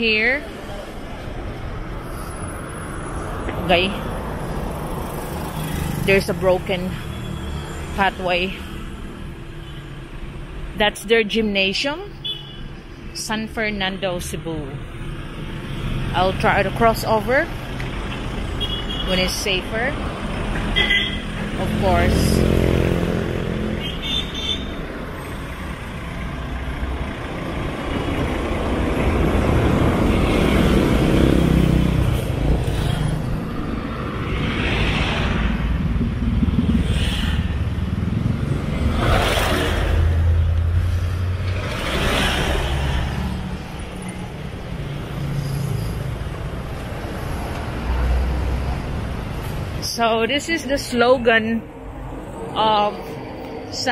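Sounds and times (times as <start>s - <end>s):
motorcycles passing: 0.0s - 10.6s, 14.9s - 53.9s
engine and road noise: 0.0s - 53.9s.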